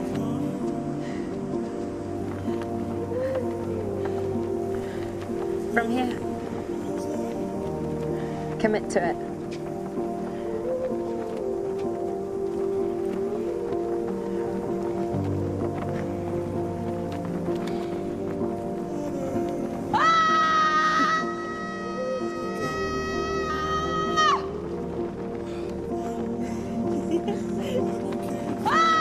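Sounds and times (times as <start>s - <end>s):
film music with sustained tones: 0.0s - 29.0s
young woman screaming: 19.9s - 24.5s, 28.6s - 29.0s.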